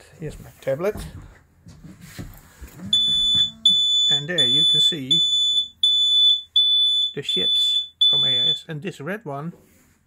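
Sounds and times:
high-pitched alarm beeping: 2.9s - 8.6s.

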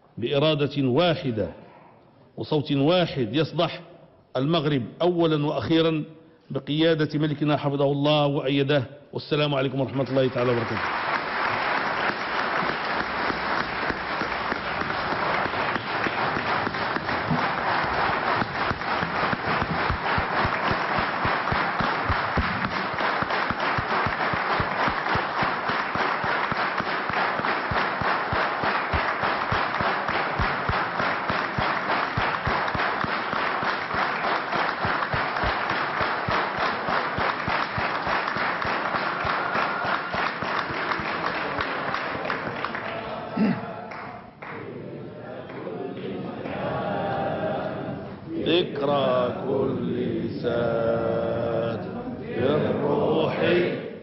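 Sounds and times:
crowd clapping: 9.8s - 44.7s.

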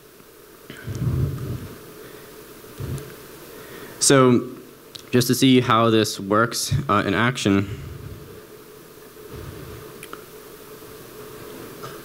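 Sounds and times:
faint steady hum: 0.0s - 12.0s
sound system hiss: 0.0s - 12.0s.

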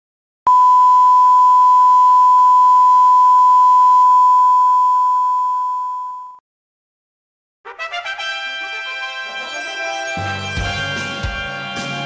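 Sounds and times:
electronic beep tone: 0.5s - 6.4s.

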